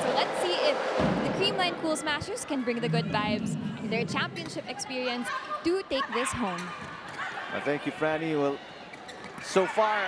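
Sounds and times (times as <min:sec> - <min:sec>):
woman reporting: 0:00.0 - 0:06.7
arena crowd noise: 0:00.0 - 0:10.0.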